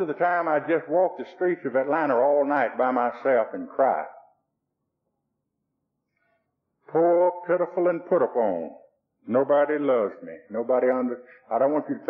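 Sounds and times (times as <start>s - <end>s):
man's voice: 0.0s - 4.2s, 6.9s - 12.0s.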